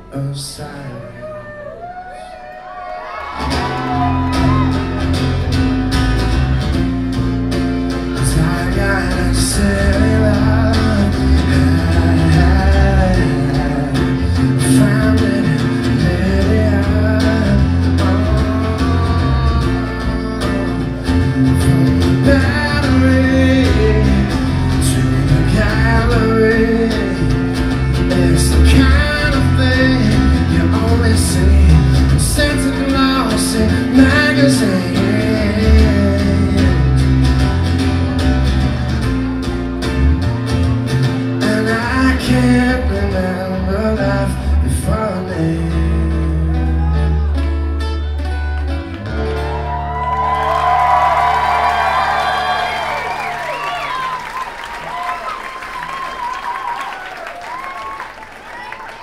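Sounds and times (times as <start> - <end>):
man singing: 0.0 - 1.5, 8.2 - 37.5, 41.1 - 47.8
live acoustic rock band: 0.0 - 58.9
acoustic guitar: 3.0 - 54.2.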